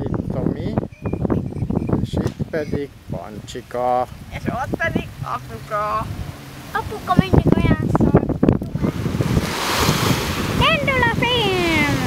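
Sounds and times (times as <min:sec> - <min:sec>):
wind buffeting microphone: 0:00.0 - 0:12.0
surf washing onto beach: 0:02.0 - 0:12.0.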